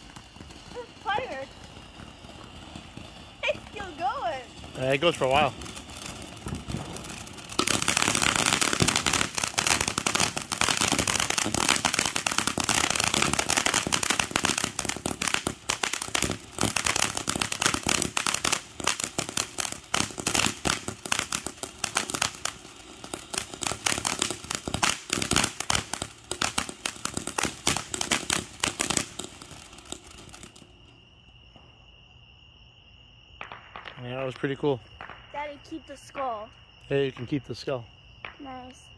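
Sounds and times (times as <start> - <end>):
firework fountain crackling: 0.0 - 31.9, 33.3 - 38.9.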